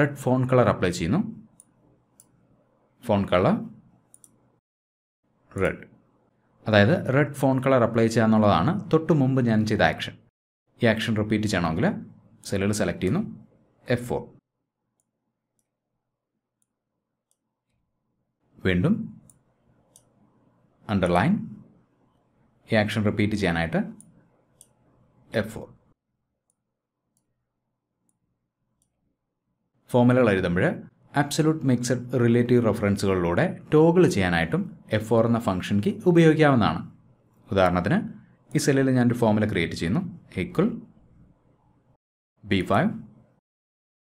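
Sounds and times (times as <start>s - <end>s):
computer mouse clicks: 4.1s - 4.4s, 19.2s - 20.2s, 23.9s - 24.8s
person speaking: 25.3s - 25.8s.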